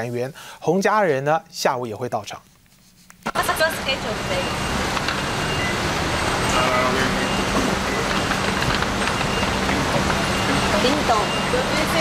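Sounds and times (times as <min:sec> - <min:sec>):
road traffic noise: 0:03.2 - 0:12.0.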